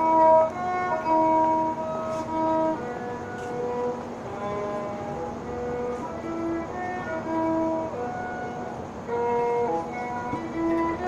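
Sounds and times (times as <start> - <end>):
violin slow melody: 0.0 - 11.0.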